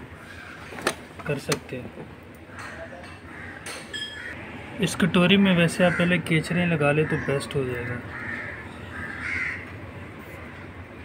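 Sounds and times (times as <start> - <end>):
steady background noise: 0.0 - 11.0
bird calling: 7.0 - 9.8.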